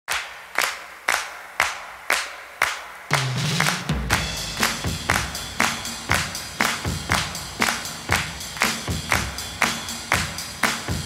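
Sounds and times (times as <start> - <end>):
handclaps in steady beat: 0.1 - 11.0.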